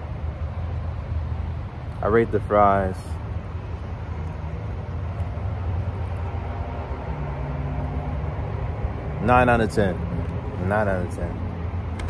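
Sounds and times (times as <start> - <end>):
faint engine hum: 0.0 - 12.0
low rumble of motor traffic: 0.0 - 12.0.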